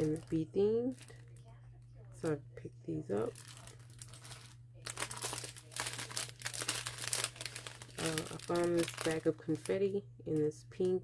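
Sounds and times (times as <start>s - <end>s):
plastic packaging crinkling: 0.0s - 2.4s, 3.1s - 10.0s.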